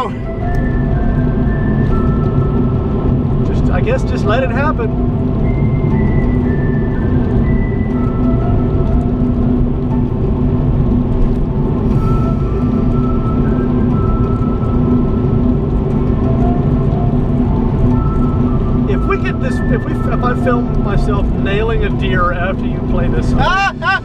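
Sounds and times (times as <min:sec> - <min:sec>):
car driving rumble: 0:00.0 - 0:24.0
song on car stereo: 0:00.0 - 0:24.0.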